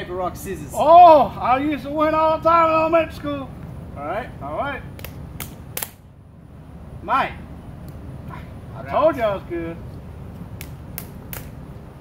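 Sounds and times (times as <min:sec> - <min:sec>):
fists slapping into palms: 0:04.9 - 0:06.0, 0:10.5 - 0:11.6.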